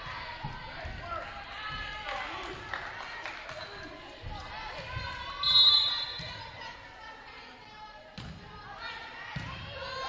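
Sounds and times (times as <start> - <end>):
spectators' voices echoing: 0.0 - 10.0
referee's whistle blast: 5.4 - 6.2.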